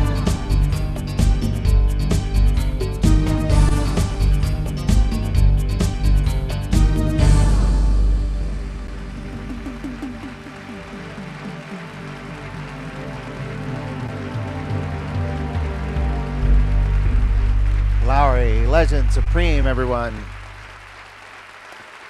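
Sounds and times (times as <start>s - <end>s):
electronic organ sustained chords: 0.0s - 21.2s.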